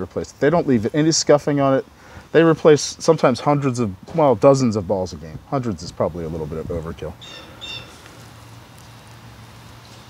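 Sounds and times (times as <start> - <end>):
bird chirps: 7.2 - 8.0.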